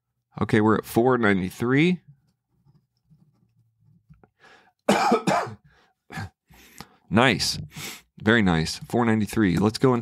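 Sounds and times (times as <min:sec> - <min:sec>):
man coughing: 0:04.9 - 0:06.4.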